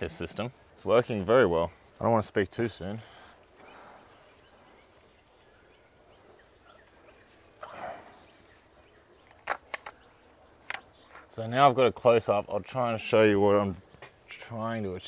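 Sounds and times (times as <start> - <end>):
rustling of plant foliage: 0.0 - 15.0
sharp clicks: 9.2 - 10.0, 10.6 - 11.2.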